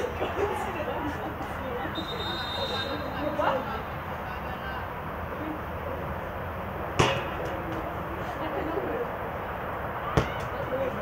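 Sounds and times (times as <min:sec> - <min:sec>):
faint voices of players: 0:00.0 - 0:06.3, 0:07.2 - 0:11.0
football kicked thud: 0:07.0 - 0:07.9, 0:10.1 - 0:10.6.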